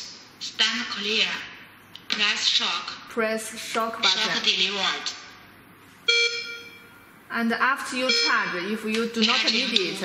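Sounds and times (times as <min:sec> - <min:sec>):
electronic monitor beep: 0:06.1 - 0:07.1, 0:08.0 - 0:09.7.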